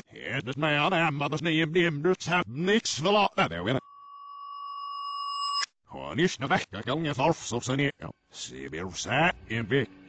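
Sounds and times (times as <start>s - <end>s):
reversed high tone: 3.6s - 5.7s.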